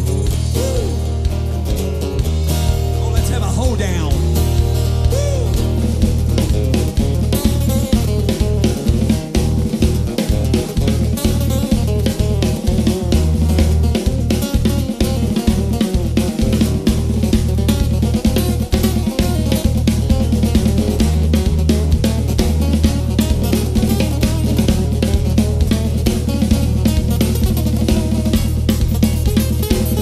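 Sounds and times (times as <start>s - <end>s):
drum kit beat: 0.0s - 30.0s
guitars: 0.0s - 30.0s.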